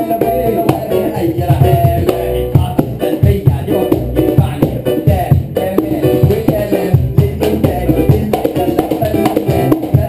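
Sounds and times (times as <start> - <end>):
hand drum beat: 0.0 - 10.0
keyboard playing quick melody: 0.0 - 10.0.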